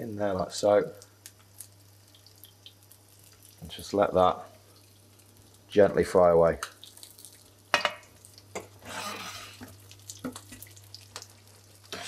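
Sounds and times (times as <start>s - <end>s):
fish sizzling in hot oil: 0.6s - 5.8s, 6.6s - 12.0s.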